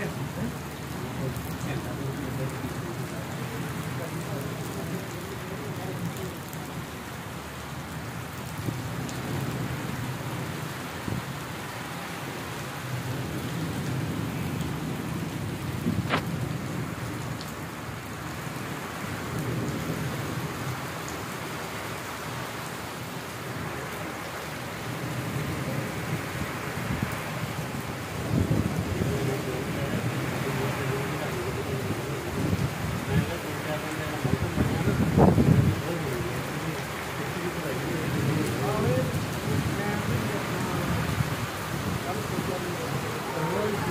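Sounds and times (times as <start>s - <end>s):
heavy rain on brick paving: 0.0s - 43.9s.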